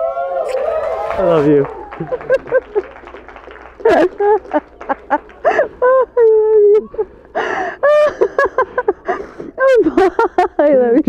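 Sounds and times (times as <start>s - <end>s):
woman gasping: 6.8s - 9.6s.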